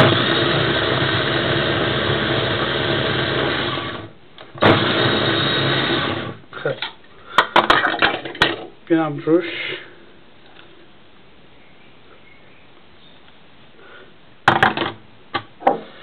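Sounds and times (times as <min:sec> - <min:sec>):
electric mini chopper running: 0:00.0 - 0:06.4.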